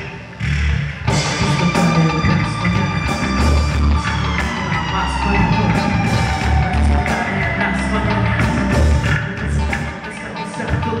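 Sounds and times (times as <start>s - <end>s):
electric guitar note sliding down: 0.0s - 9.4s
drum kit: 0.0s - 11.0s
electric bass: 0.0s - 11.0s.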